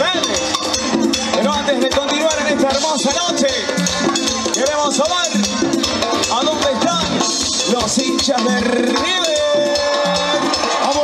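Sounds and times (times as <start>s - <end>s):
live band through sound system: 0.0s - 11.0s
percussion beat: 0.0s - 11.0s.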